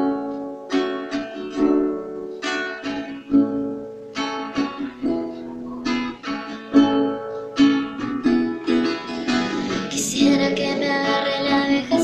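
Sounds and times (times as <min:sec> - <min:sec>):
acoustic guitar instrumental: 0:00.0 - 0:12.0.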